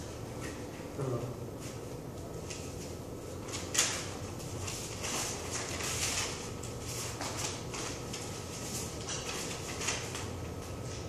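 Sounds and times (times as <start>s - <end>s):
paper rustling: 1.6s - 11.0s.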